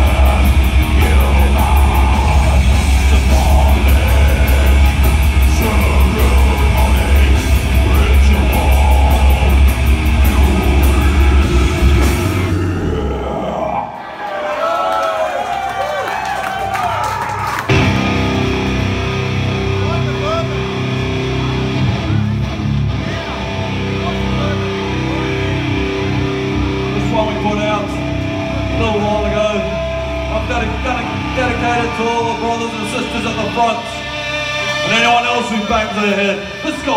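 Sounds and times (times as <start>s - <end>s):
electric guitar droning tones: 0.0s - 13.5s, 17.7s - 33.4s
heavy metal band playing: 0.0s - 14.0s, 17.7s - 36.9s
crowd cheering and shouting: 0.0s - 36.9s.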